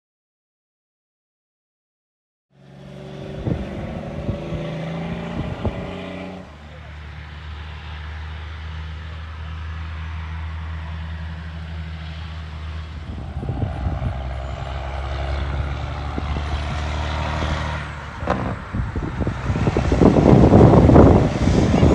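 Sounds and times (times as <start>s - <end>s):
truck passing close: 2.5s - 21.9s
diesel truck engine running: 2.6s - 21.9s.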